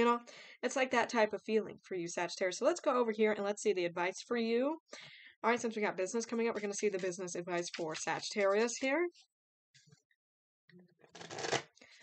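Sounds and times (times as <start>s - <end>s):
cards being shuffled: 6.6s - 8.8s, 11.2s - 11.6s.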